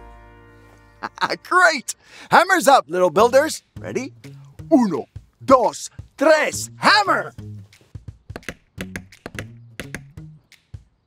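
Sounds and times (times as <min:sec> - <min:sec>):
background music with low bass: 0:03.1 - 0:11.0.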